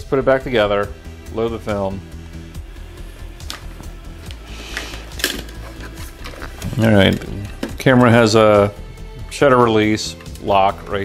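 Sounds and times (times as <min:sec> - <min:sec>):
background music: 0:00.0 - 0:11.0
plastic camera scraping: 0:04.7 - 0:07.8.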